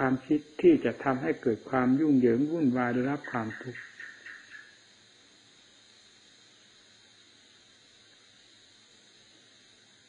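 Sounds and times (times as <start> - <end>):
man's voice: 0.0 - 3.8
tape hiss: 0.0 - 10.0
thin high steady tone: 0.0 - 10.0.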